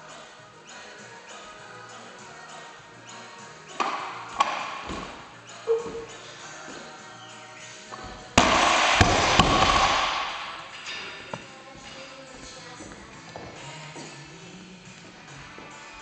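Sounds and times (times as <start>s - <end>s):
barbell plates bouncing: 3.7s - 6.9s, 7.9s - 11.5s
barbell crashing onto platform: 8.4s - 10.7s.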